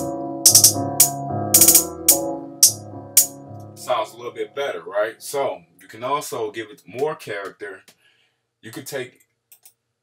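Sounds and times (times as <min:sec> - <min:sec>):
hi-hat pattern: 0:00.0 - 0:03.4.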